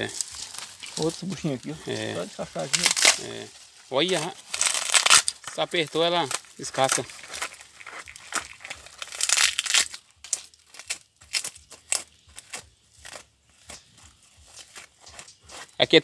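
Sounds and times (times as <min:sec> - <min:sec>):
dry loofah skin crackling and tearing: 0:00.0 - 0:16.0.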